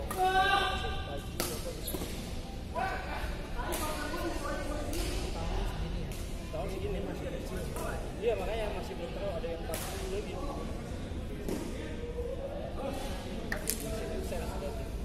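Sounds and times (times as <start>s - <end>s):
rackets hitting shuttlecocks: 1.3s - 2.2s.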